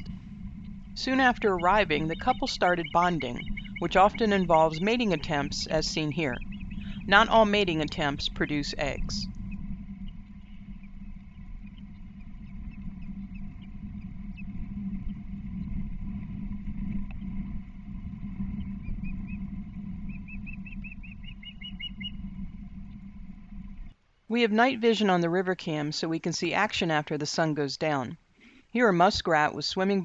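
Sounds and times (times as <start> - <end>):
osprey chirping: 0.0 - 24.0
wind and water noise: 0.0 - 24.0
low microphone hum: 0.0 - 30.0.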